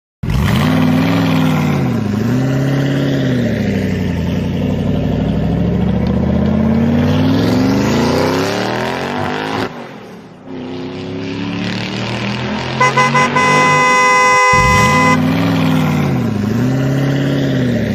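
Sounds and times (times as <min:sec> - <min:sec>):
car engine revving: 0:10.5 - 0:17.9.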